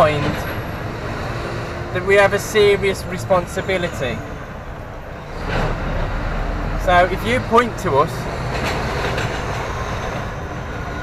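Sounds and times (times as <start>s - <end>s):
lorry diesel engine rumble: 0.0s - 11.0s.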